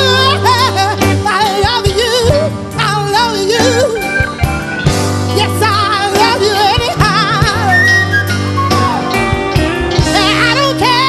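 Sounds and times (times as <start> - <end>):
bass line: 0.0 - 11.0
live rock band playing: 0.0 - 11.0.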